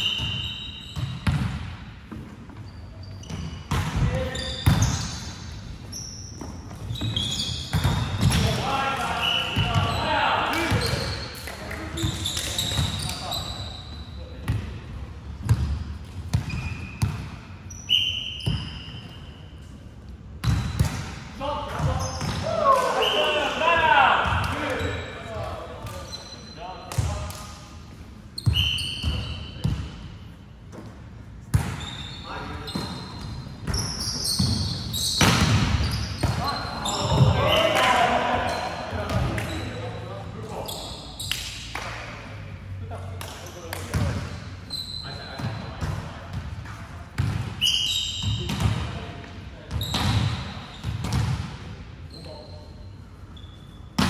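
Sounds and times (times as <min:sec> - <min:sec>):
shoes squeaking on wooden floor: 0:02.4 - 0:08.4, 0:31.8 - 0:35.2.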